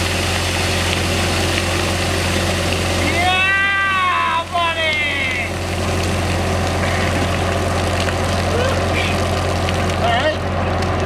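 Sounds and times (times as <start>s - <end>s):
loader engine idling: 0.0s - 11.0s
water pouring and splashing: 0.0s - 11.0s.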